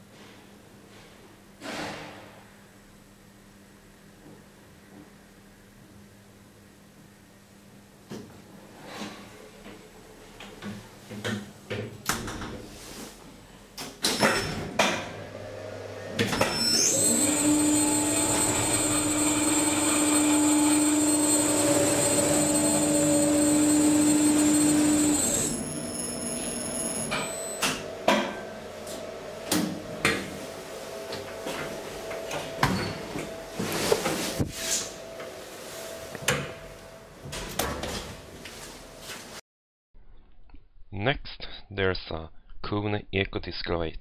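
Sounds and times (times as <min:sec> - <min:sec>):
lift drive humming and whining: 0:14.6 - 0:38.4.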